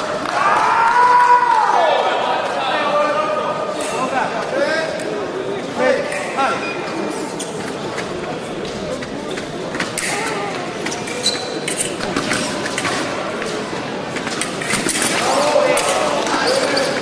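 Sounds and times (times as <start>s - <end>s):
chatter in a large hall: 0.0s - 17.0s
shoe squeaks: 6.3s - 8.2s, 9.2s - 12.6s, 16.3s - 17.0s.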